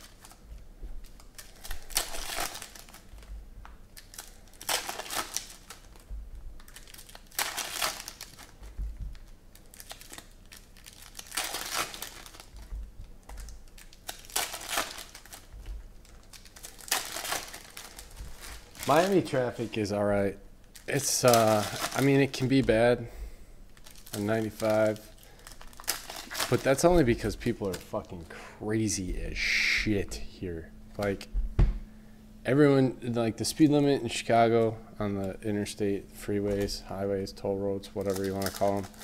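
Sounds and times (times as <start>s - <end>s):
foil wrappers crinkling: 0.0s - 23.0s, 23.6s - 29.0s, 33.4s - 39.0s.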